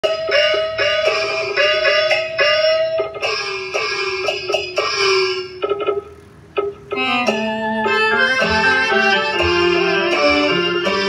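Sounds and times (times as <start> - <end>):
opera-style instrumental music: 6.9 - 11.0.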